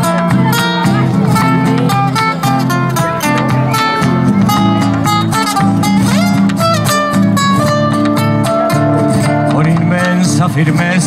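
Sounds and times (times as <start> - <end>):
acoustic guitars strummed and picked: 0.0 - 11.0.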